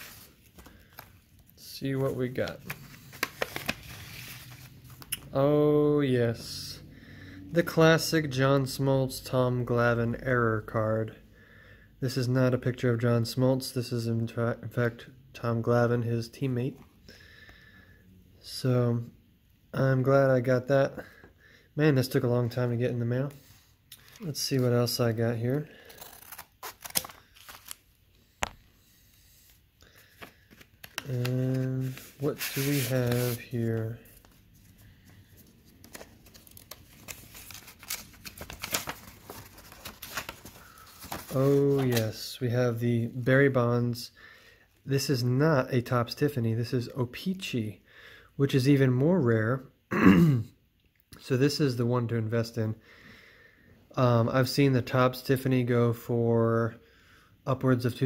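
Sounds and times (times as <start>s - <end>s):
paper envelope rustling: 0.0s - 5.2s, 25.8s - 28.6s, 29.5s - 42.2s.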